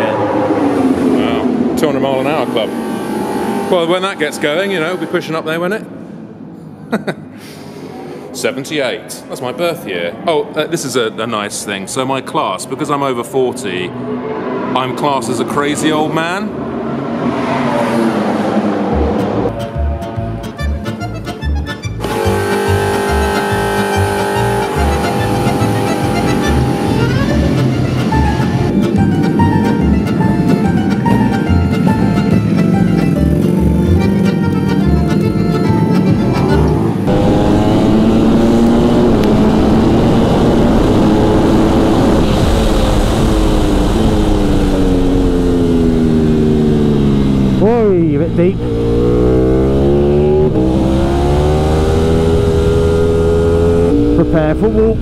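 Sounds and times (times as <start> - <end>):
motorcycle engine at speed: 0.0 - 5.2, 22.0 - 55.0.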